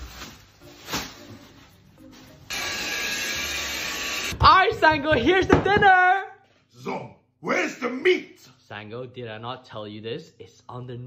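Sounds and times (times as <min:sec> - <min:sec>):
soft music: 0:00.0 - 0:03.3
vacuum cleaner running: 0:02.5 - 0:04.4.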